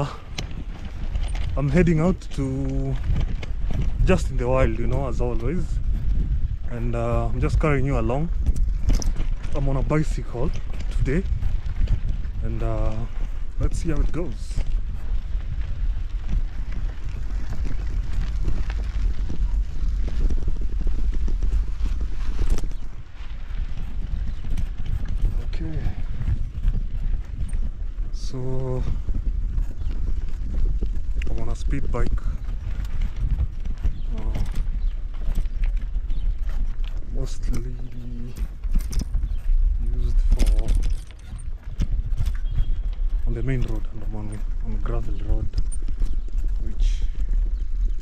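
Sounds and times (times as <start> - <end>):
rider's voice: 0.0 - 0.4, 1.5 - 3.2, 4.0 - 5.9, 6.6 - 8.4, 9.4 - 11.4, 12.4 - 14.8, 25.2 - 26.2, 28.1 - 29.2, 31.2 - 32.4, 34.1 - 34.6, 37.0 - 38.6, 39.8 - 41.0, 43.2 - 45.8, 46.5 - 47.2
bicycle knocks and rattles: 0.0 - 48.0
wind on microphone: 0.0 - 48.0.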